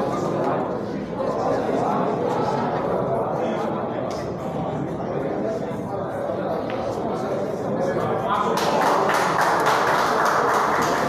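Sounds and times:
audience clapping: 8.5 - 11.0.

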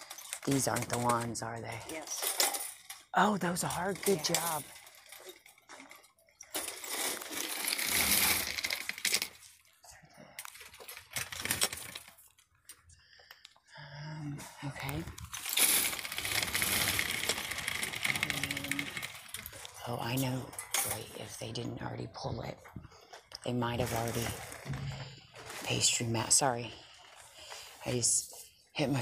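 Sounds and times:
wire shopping cart rattling: 0.0 - 9.6, 10.5 - 12.2, 15.1 - 21.5, 23.7 - 27.2.

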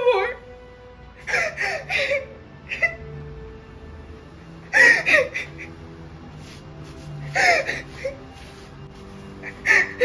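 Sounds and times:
quiet background music: 0.0 - 10.0
woman sobbing: 1.2 - 3.2, 4.7 - 5.8, 7.2 - 8.3.

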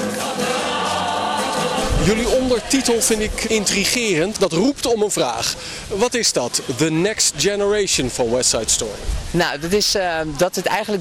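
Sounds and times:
choir singing held chords: 0.0 - 4.2.

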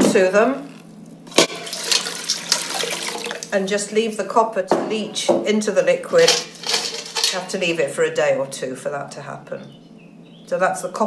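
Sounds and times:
liquid pouring and splashing: 1.3 - 3.6.

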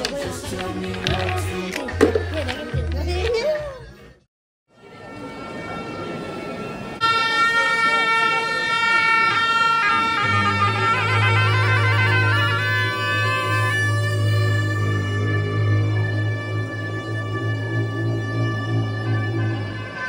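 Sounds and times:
crowd murmur: 4.8 - 20.0
low steady drone: 4.8 - 20.0
reedy horn melody: 4.8 - 20.0.

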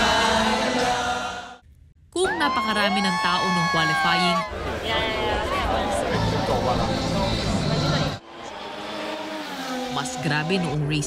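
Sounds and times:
race car engine: 5.5 - 11.0.

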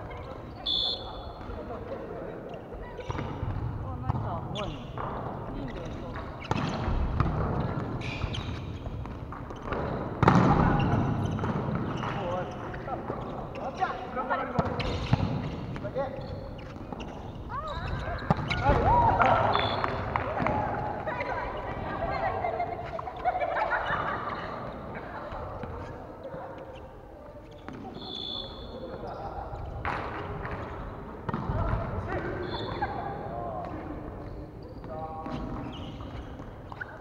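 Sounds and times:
volleyball being hit: 9.0 - 12.3
players calling out: 16.2 - 25.0.

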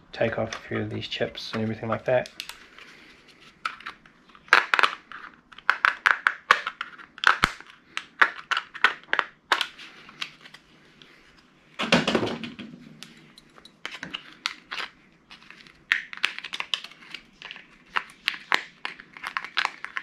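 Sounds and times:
circuit board cracking and snapping: 5.6 - 9.8.

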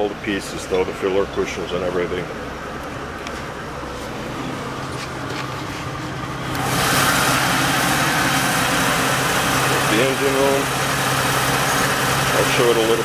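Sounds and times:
boat engine idling: 3.7 - 13.0.

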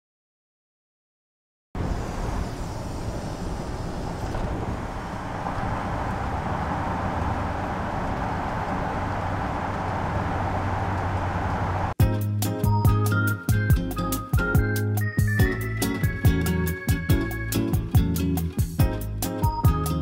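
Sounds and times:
van engine and road noise: 1.8 - 12.2.

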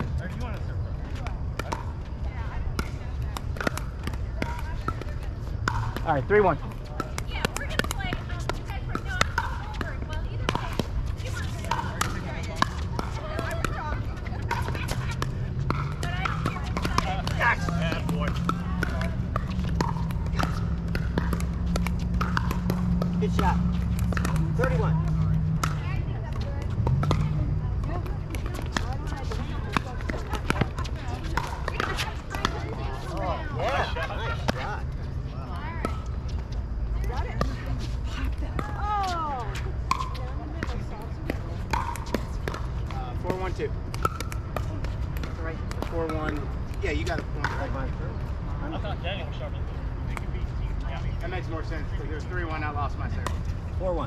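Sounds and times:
paddles hitting plastic ball: 0.0 - 34.7, 35.8 - 47.8
faint voices: 0.0 - 43.9
ball bouncing on hard court: 0.0 - 48.3, 52.4 - 53.6
low hum: 8.7 - 33.5.

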